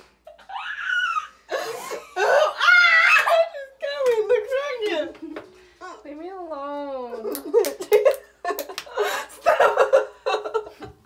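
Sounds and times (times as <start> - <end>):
girls laughing loudly: 0.3 - 3.7, 7.5 - 10.9.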